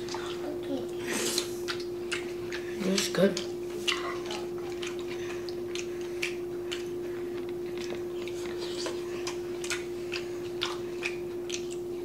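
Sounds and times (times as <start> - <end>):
people chewing and mouth sounds: 0.0 - 12.0
steady low hum: 0.0 - 12.0.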